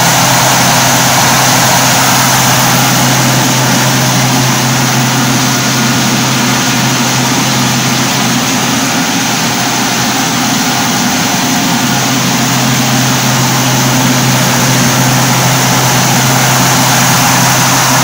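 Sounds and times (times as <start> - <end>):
rice huller machine drone: 0.0 - 18.0.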